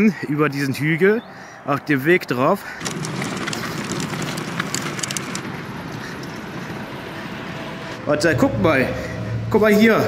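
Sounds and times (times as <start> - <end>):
cart wheels rolling on pavement: 2.6 - 7.5
rattling clicks: 2.8 - 6.5.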